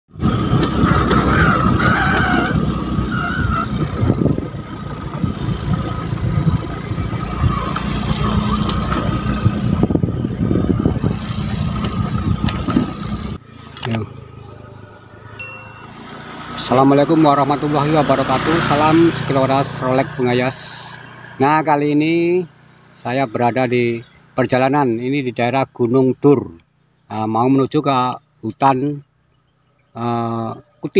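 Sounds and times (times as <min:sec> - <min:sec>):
wind buffeting microphone: 0:00.1 - 0:13.4
small motorcycle engine: 0:00.1 - 0:25.0.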